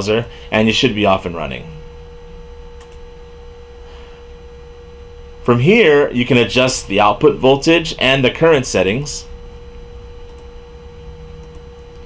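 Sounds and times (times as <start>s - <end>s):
low background hum: 0.0s - 12.0s
steady pure tone: 0.0s - 12.0s.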